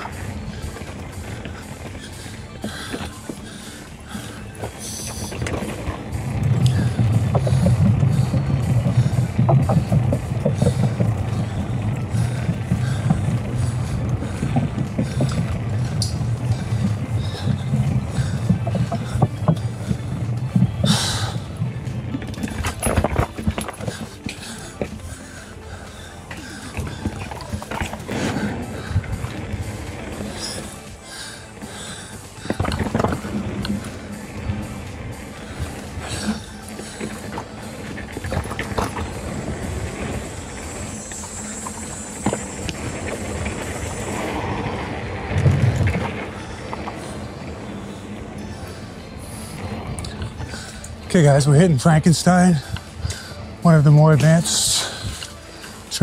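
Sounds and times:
background music: 0:00.0 - 0:56.0
bike tyres and drivetrain rattle: 0:00.0 - 0:56.0
tyres rumbling over wooden planks: 0:00.0 - 0:56.0.

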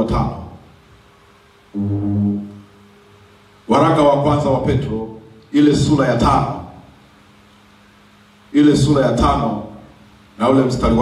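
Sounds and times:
low steady tone: 0:01.7 - 0:03.2.

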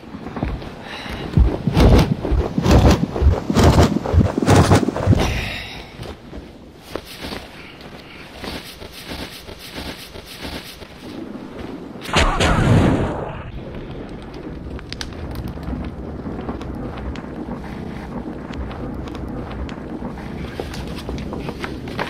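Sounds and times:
fire crackling: 0:00.0 - 0:22.0
whoosh of flames: 0:00.0 - 0:22.0.

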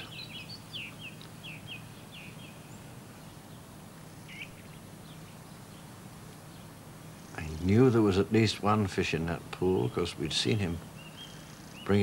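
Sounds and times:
small bird chirping: 0:00.0 - 0:07.8, 0:09.7 - 0:12.0
faint low hum: 0:00.0 - 0:12.0.

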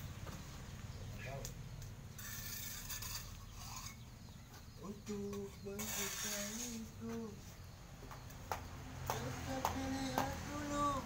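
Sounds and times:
man singing held notes: 0:04.8 - 0:07.5, 0:09.1 - 0:11.0.

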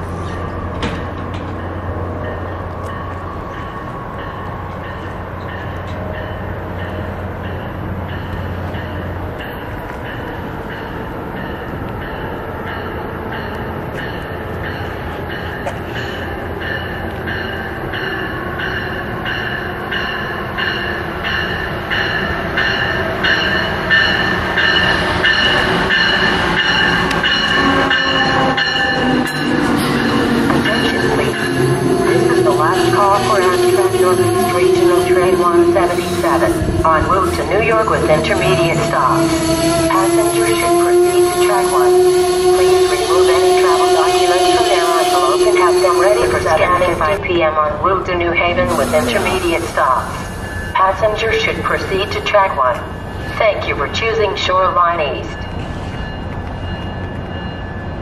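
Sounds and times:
train pulling into station: 0:00.0 - 0:58.0.

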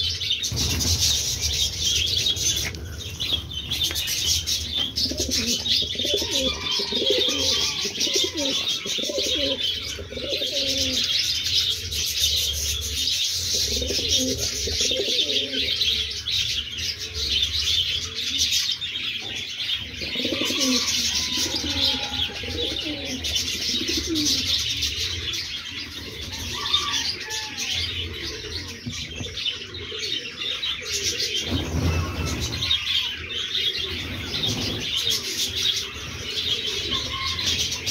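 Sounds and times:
pigeons cooing: 0:00.0 - 0:37.9.

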